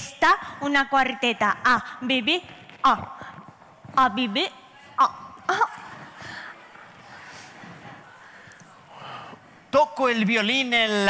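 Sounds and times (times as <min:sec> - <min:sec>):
audience murmur and rustle: 0:02.5 - 0:11.0.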